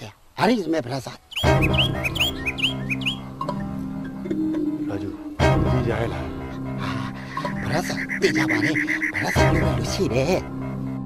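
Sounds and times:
small birds chirping: 0:00.0 - 0:05.4, 0:07.0 - 0:10.4
background music with low notes: 0:01.0 - 0:11.0.

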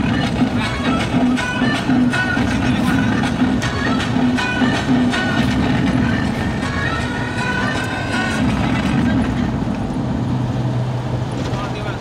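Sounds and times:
music playing: 0:00.0 - 0:09.6
car engine and road noise: 0:00.0 - 0:12.0.

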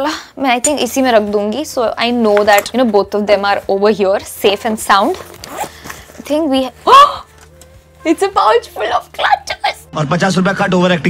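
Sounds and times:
woman talking: 0:00.0 - 0:05.2, 0:06.2 - 0:07.3, 0:08.0 - 0:09.9
zipper pulled open: 0:04.6 - 0:07.7.

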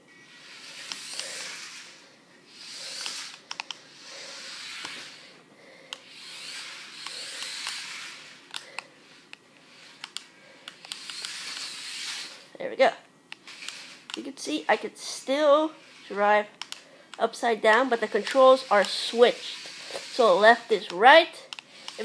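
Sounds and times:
toy car electric motors whirring: 0:00.3 - 0:12.8, 0:13.4 - 0:22.0.

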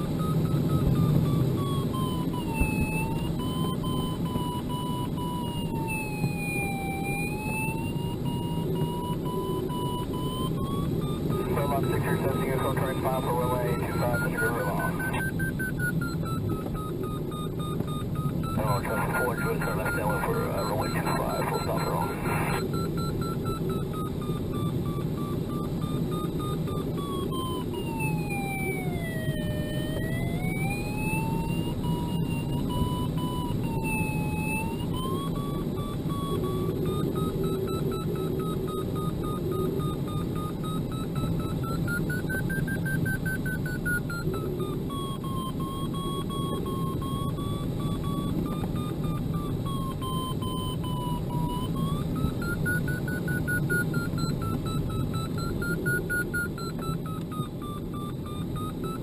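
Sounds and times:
variometer wavering tone: 0:00.0 - 0:59.0.

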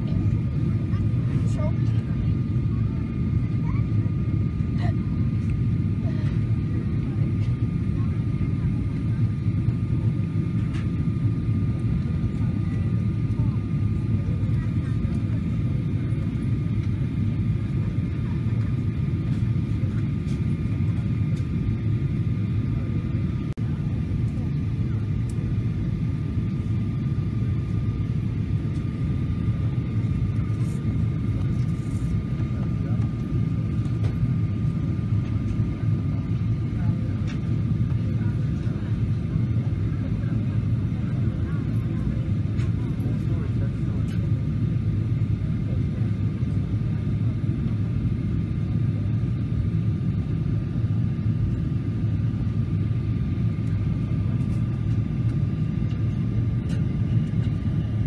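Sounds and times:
low rumble of jet engines: 0:00.0 - 0:58.0
thin steady whine: 0:00.0 - 0:58.0.

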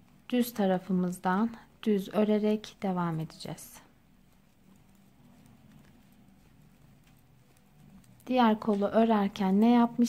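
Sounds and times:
low steady hum: 0:00.0 - 0:10.0
knitting needles clicking: 0:02.0 - 0:10.0.

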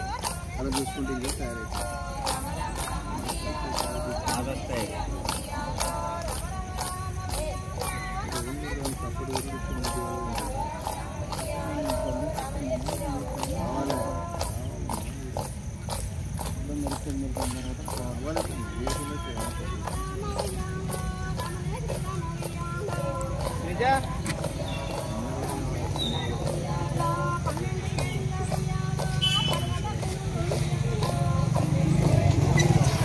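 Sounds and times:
folk singing: 0:00.0 - 0:33.0
women clapping in unison: 0:00.0 - 0:33.0.

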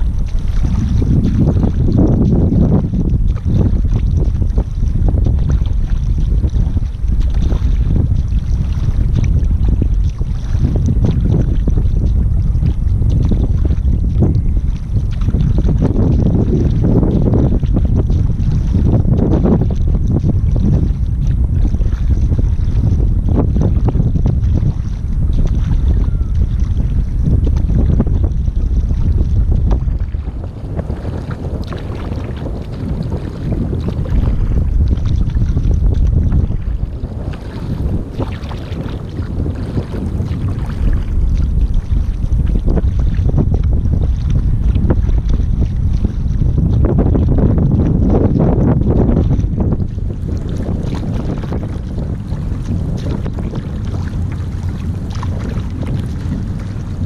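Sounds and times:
paddle splashes: 0:00.0 - 0:57.0
water rushing along hull: 0:00.0 - 0:57.0
wind buffeting microphone: 0:00.0 - 0:57.0.

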